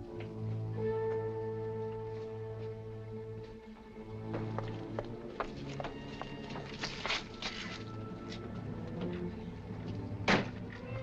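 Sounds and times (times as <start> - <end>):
low film score music: 0.0 - 11.0.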